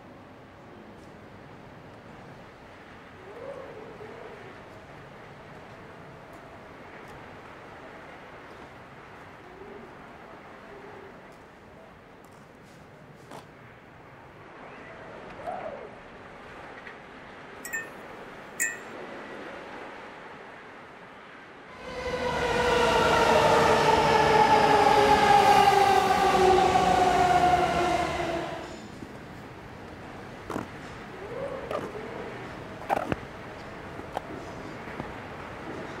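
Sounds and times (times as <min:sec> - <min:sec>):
train passing with falling whine: 0:17.7 - 0:17.9, 0:18.6 - 0:36.0.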